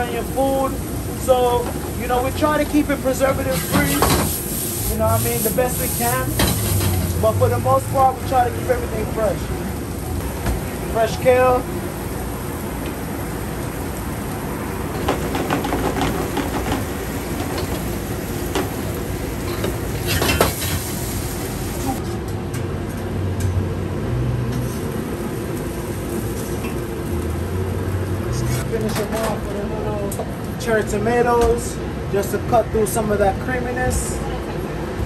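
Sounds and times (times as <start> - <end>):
food sizzling in pans: 0.0 - 22.0
utensils clinking on pans: 6.3 - 7.2, 19.4 - 20.9.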